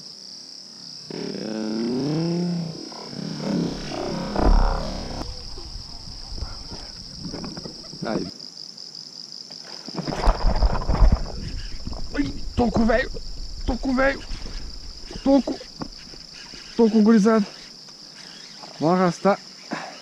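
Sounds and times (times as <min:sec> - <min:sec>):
insects trilling: 0:00.0 - 0:20.0
low rumble on microphone: 0:03.4 - 0:08.0, 0:10.1 - 0:16.0.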